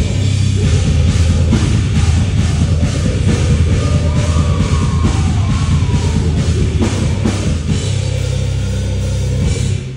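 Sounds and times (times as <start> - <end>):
distorted guitars: 0.0 - 9.9
heavy drums: 0.0 - 9.9
metal band playing live: 0.0 - 9.9.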